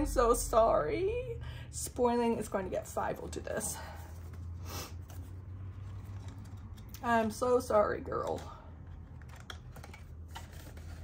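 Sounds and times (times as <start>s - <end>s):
paper and plastic rustling: 8.3s - 11.0s.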